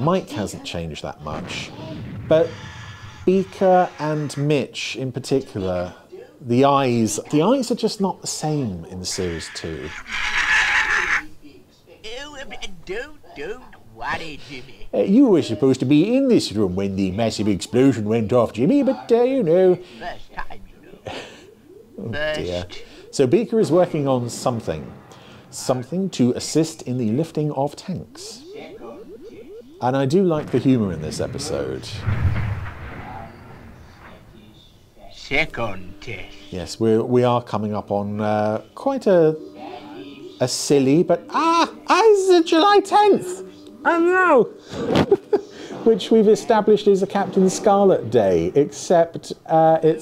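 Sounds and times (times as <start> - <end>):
explosion boom: 1.3 - 4.5, 30.3 - 34.6
puppet monkey screeching chatter: 9.1 - 11.3.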